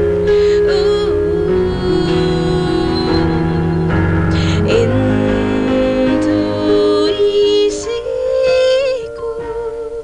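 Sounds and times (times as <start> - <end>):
soft sustained accompaniment: 0.0 - 10.0.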